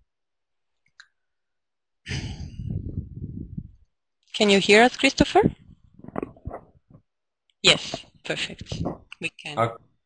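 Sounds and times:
breath noise into microphone: 2.1 - 3.8.

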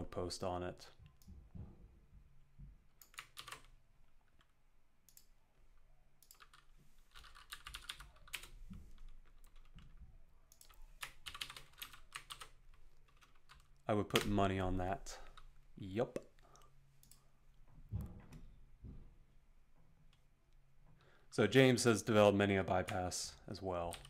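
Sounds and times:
computer keyboard typing: 3.0 - 5.3, 6.2 - 14.4.

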